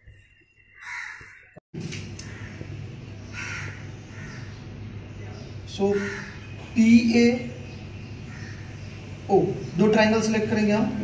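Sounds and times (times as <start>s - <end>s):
bird calling: 2.2s - 9.8s.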